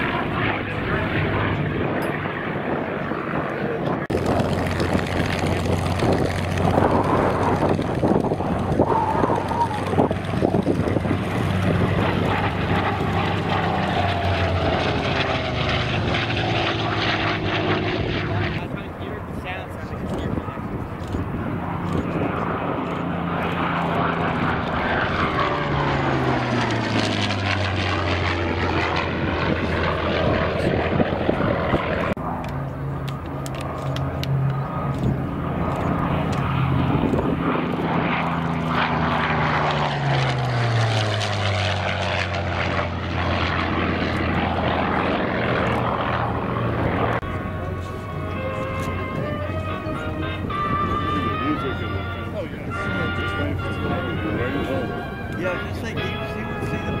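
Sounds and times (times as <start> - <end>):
propeller plane engine flyby: 0.0 - 57.0.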